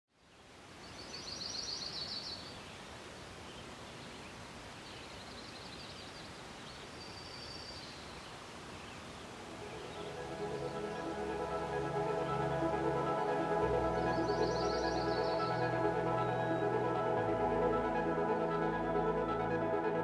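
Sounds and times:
open-air hiss: 0:00.1 - 0:20.0
birds chirping: 0:03.5 - 0:19.4.

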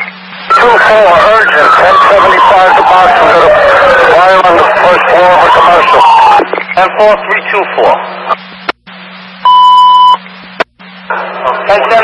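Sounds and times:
constant low hum: 0:00.0 - 0:12.0
radio transmission: 0:00.0 - 0:12.0
loud alert beep: 0:09.5 - 0:10.2.

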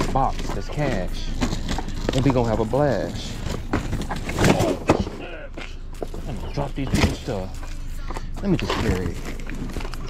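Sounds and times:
wordless voice sounds: 0:00.0 - 0:01.4.

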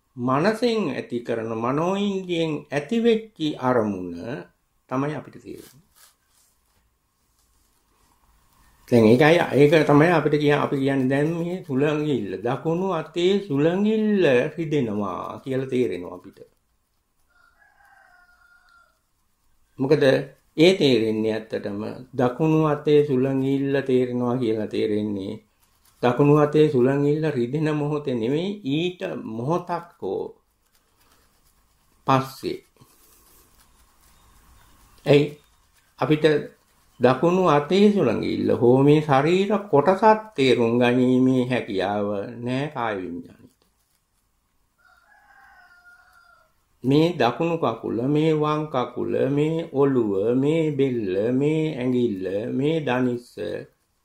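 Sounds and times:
faint distant animal call: 0:17.2 - 0:43.5, 0:44.8 - 0:53.7.

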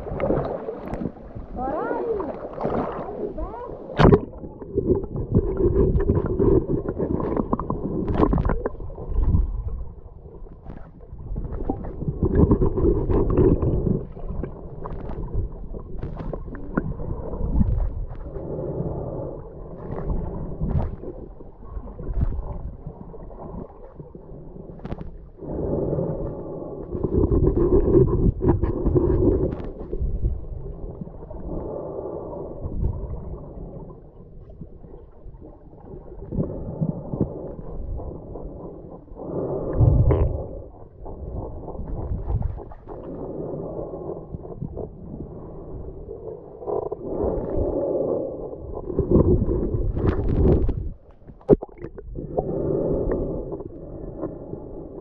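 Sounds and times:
underwater gurgling and rumbling: 0:00.0 - 0:55.0.

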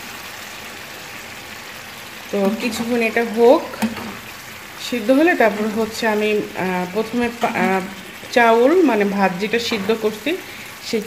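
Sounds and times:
curry sizzling in a frying pan: 0:00.0 - 0:11.0
spatula scraping a pan: 0:02.4 - 0:10.8.

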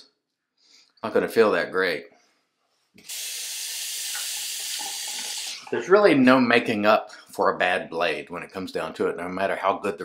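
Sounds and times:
tap water running into sink: 0:03.8 - 0:05.8.

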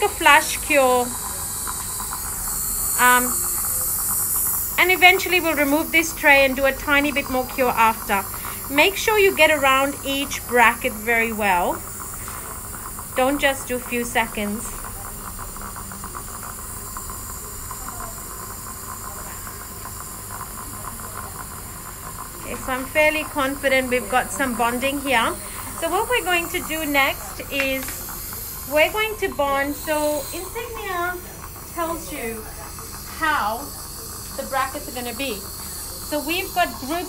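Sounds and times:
dental suction hissing: 0:00.0 - 0:37.0.

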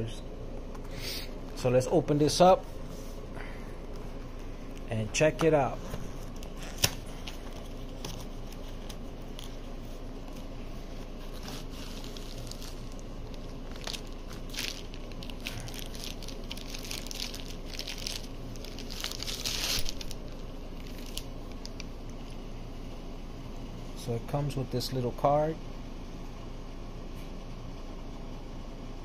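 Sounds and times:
cardboard and plastic crinkling: 0:05.2 - 0:21.8.

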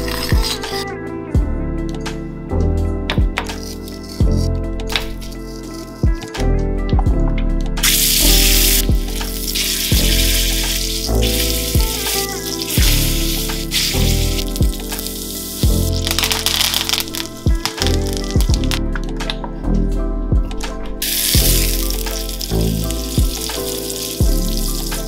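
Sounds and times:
background music with beat: 0:00.0 - 0:25.0
meat sizzling in frying pan: 0:07.8 - 0:18.4, 0:21.0 - 0:25.0.

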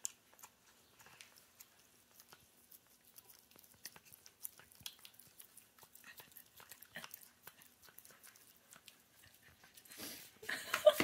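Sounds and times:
dog licking and chewing: 0:00.0 - 0:10.0.

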